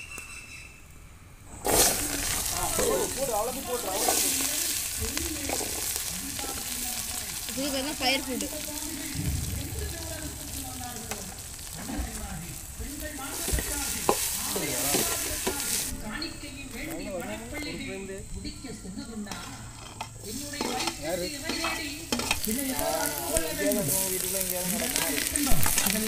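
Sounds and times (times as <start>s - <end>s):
mussels sizzling in hot oil: 1.6s - 17.8s, 19.4s - 26.0s.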